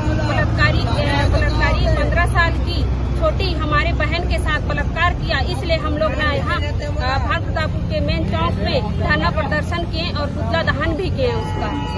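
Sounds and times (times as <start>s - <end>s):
people talking over one another: 0.0s - 11.9s.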